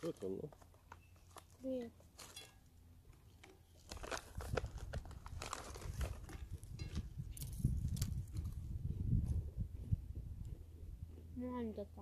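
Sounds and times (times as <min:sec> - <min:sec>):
crackers crunching: 0:00.0 - 0:08.6
wind rumble on microphone: 0:04.1 - 0:11.3.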